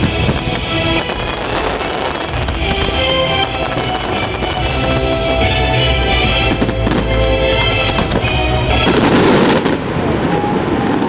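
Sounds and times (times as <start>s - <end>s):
show music from loudspeakers: 0.0s - 10.0s
fireworks bursting and crackling: 0.0s - 11.0s.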